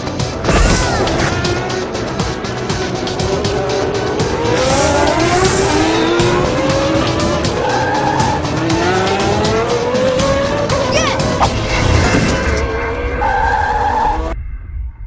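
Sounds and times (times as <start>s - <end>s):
background music: 0.0s - 15.0s
cartoon race car engine revving: 3.1s - 14.3s.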